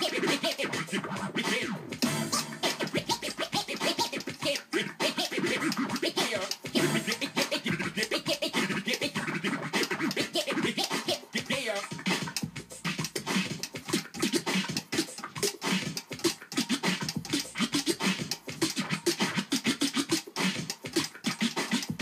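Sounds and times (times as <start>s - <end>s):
vinyl record scratching: 0.0s - 22.0s.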